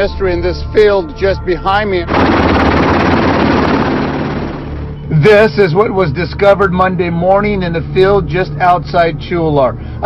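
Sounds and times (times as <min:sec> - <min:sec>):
helicopter rotor chop: 0:02.1 - 0:05.2.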